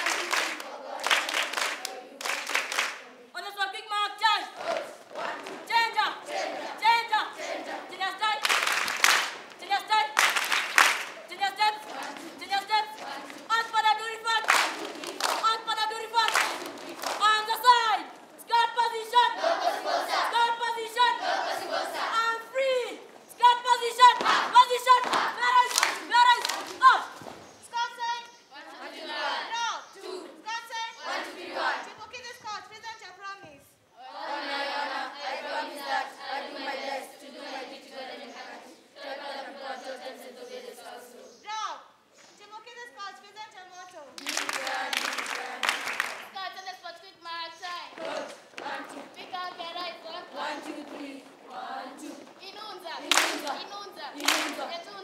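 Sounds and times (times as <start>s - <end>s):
children clapping in unison: 0.0s - 3.0s, 8.2s - 17.8s, 23.9s - 27.3s, 44.1s - 46.4s, 53.0s - 54.8s
children chanting in unison: 0.0s - 32.1s, 33.9s - 41.5s, 44.2s - 46.4s, 47.5s - 55.0s.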